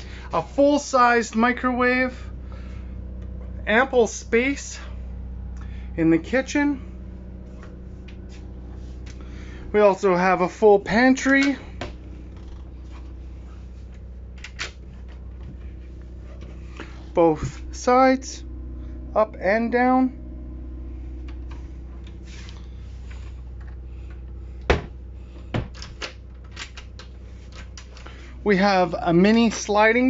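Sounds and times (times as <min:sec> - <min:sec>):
generator humming: 0:00.0 - 0:30.0.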